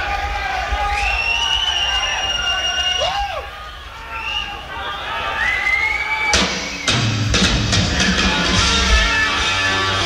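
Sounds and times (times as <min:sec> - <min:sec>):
drum and cymbal hits: 0:06.3 - 0:10.0
hard rock band playing: 0:06.3 - 0:10.0.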